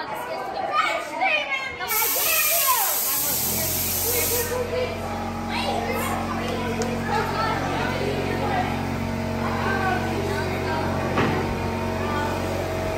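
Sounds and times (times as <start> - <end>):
children's voices: 0.0 - 12.9
hissing jet of air: 1.9 - 4.6.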